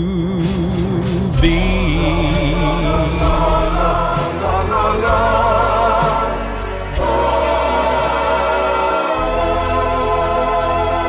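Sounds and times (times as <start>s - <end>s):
choir-like backing voices: 0.4s - 11.0s.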